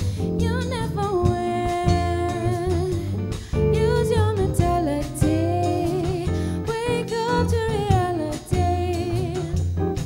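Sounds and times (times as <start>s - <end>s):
walking bass: 0.0s - 10.0s.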